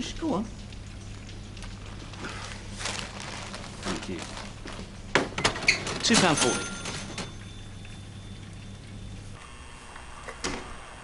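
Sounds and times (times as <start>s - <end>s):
low steady hum: 0.0s - 10.3s.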